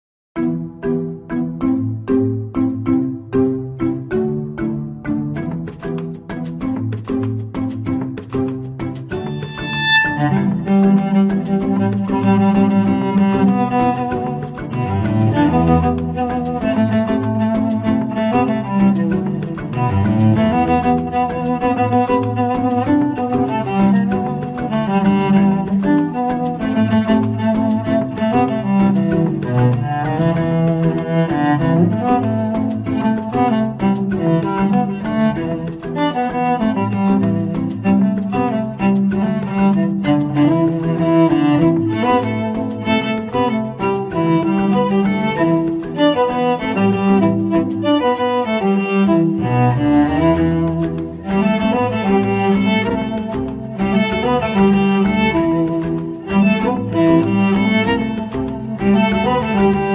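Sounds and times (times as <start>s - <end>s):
cellos playing pop melody: 0.4s - 59.9s.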